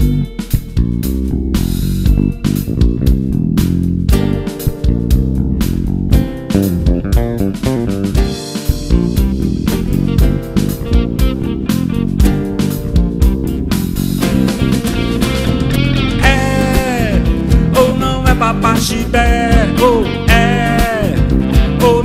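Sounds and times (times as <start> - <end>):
lead guitar bending notes: 0.0 - 22.0
live band playing: 0.0 - 22.0.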